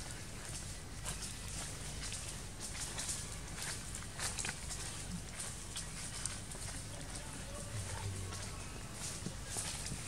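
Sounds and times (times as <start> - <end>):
light footfalls on dry leaves: 0.0 - 10.0.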